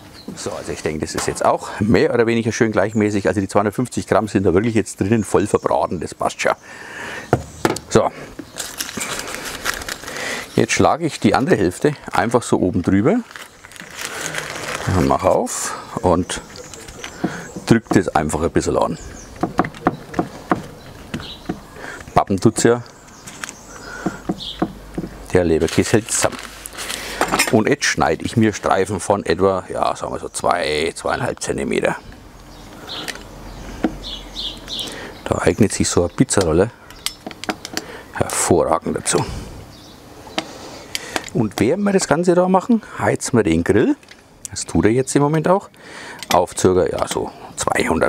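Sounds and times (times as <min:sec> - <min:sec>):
bird chirping: 0:00.0 - 0:01.5, 0:05.1 - 0:08.7, 0:15.0 - 0:26.0, 0:27.0 - 0:38.4, 0:39.2 - 0:41.8
baking paper crinkling: 0:08.5 - 0:19.0, 0:25.3 - 0:27.8.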